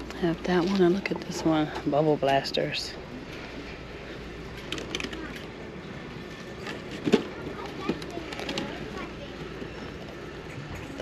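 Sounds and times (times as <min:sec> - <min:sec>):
faint background chatter: 0:03.3 - 0:11.0.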